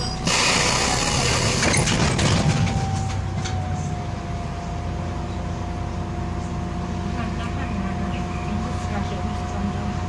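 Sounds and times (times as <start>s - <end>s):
bus drivetrain low rumble: 0.0s - 10.0s
constant drivetrain whine: 0.0s - 10.0s
voices: 5.3s - 10.0s.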